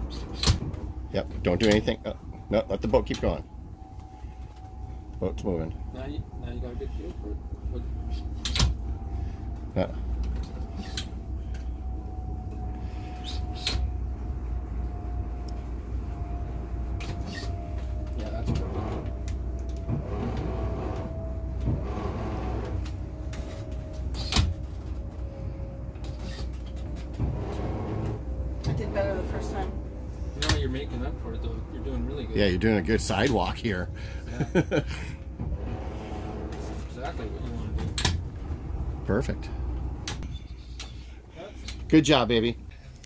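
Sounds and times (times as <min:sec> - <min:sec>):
boat engines idling rumble: 0:00.0 - 0:43.0
faint falling whine: 0:00.1 - 0:33.8.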